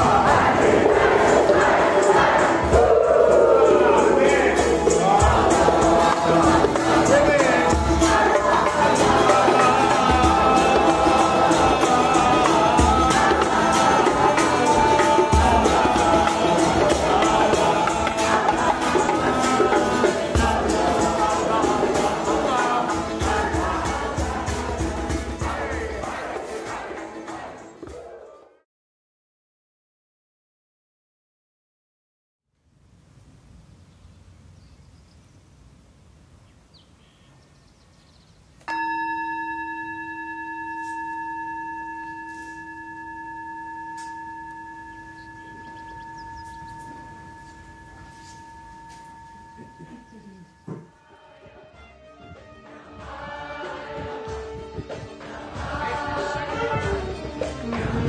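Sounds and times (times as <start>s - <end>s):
steady beat: 0.0s - 28.0s
group of voices singing: 0.0s - 28.6s, 52.6s - 58.0s
singing bowl ringing: 38.6s - 51.5s.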